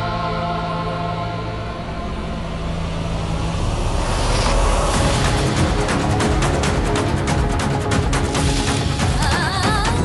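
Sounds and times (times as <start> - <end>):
sustained chord over low drone: 0.0 - 7.3.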